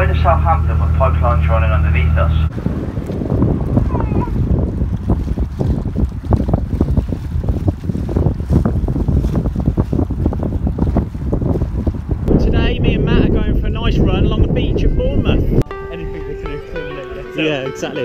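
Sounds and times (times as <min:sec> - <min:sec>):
wind buffeting microphone: 0:00.0 - 0:16.6
person speaking: 0:12.3 - 0:18.0.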